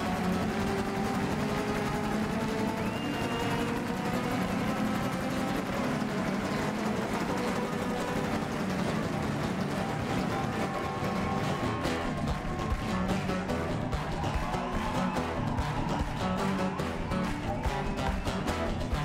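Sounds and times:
acoustic guitars strumming: 0.0 - 19.0.

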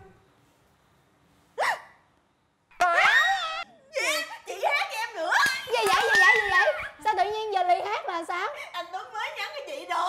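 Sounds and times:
girl squealing with delight: 2.8 - 3.7.

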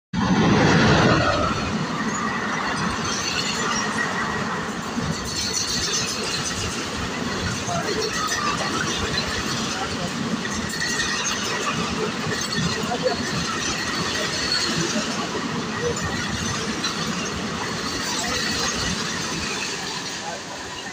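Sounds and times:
passenger train rumbling on track: 0.1 - 20.9.

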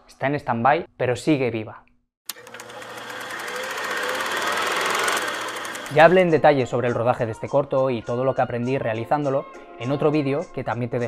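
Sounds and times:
small machine clattering: 2.3 - 6.2.

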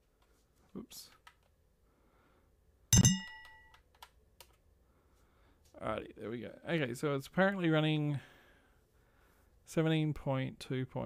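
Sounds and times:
loud knock with metallic ring: 3.0 - 3.7.

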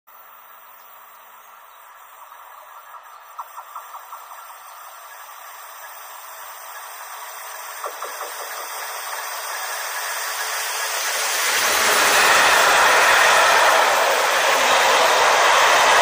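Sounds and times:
train rushing along rails: 0.1 - 16.0.

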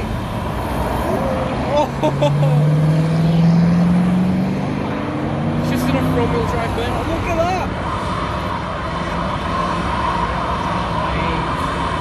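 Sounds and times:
car engine at high revs: 0.0 - 12.0
rough steady rush: 0.0 - 12.0
people's voices: 5.5 - 8.0.

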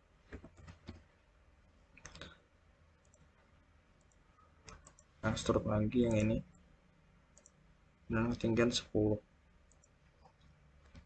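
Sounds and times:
faint computer mouse clicks: 4.0 - 5.1, 7.4 - 7.6, 9.7 - 11.0.

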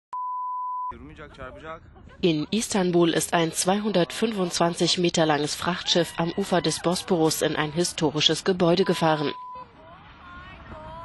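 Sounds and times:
electronic beep: 8.9 - 9.6.

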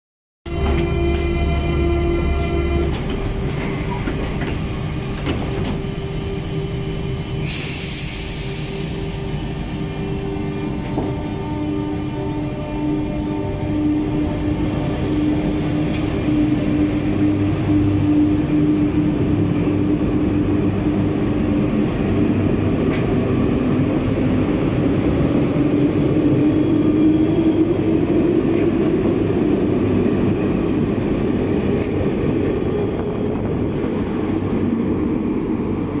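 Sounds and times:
train wheels rumbling: 0.5 - 36.0.

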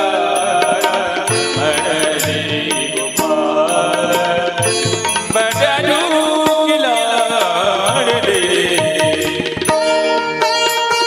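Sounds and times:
chant-like melodic notes: 0.0 - 11.0
devotional music over sound system: 0.0 - 11.0
sharp percussion strokes: 0.0 - 11.0.

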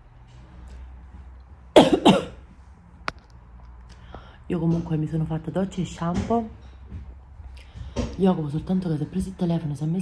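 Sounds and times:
woman coughing: 1.8 - 2.4.

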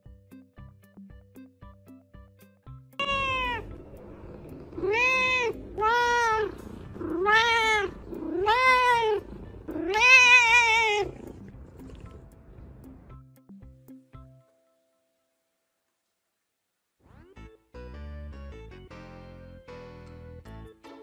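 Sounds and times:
background music: 0.0 - 15.2, 17.0 - 21.0
cat meowing: 3.0 - 3.8, 4.7 - 11.3.

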